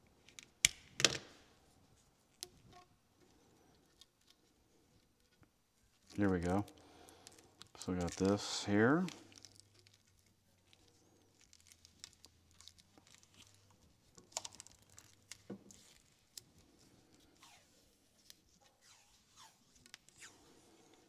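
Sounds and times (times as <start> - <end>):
small clicks and rustles: 2.3 - 8.4, 9.0 - 17.4.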